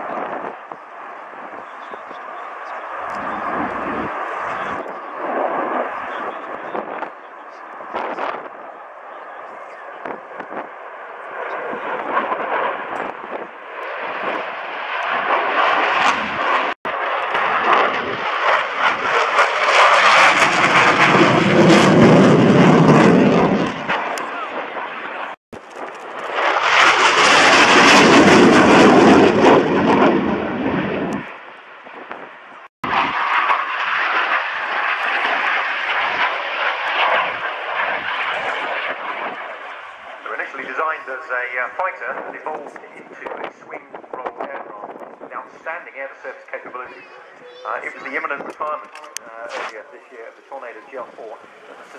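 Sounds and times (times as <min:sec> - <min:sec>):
faint voices: 0:00.0 - 0:12.8, 0:24.2 - 0:25.4, 0:40.2 - 0:51.9
fighter jet afterburner roar: 0:00.0 - 0:48.8.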